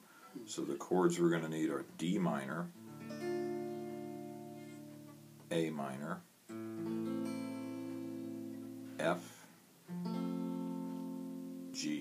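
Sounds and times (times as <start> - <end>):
electric guitar chord ringing: 2.8 - 5.5, 6.5 - 9.2, 9.9 - 11.8.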